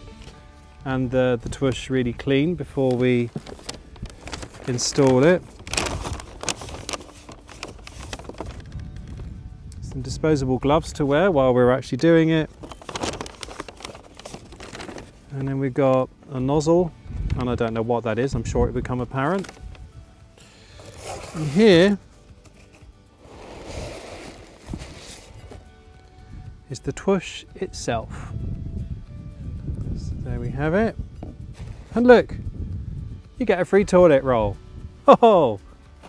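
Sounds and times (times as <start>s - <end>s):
faint background music: 0.0s - 36.0s
paper bag rustling: 2.6s - 9.2s, 12.2s - 16.1s, 19.1s - 19.8s, 20.5s - 25.8s, 31.5s - 32.1s.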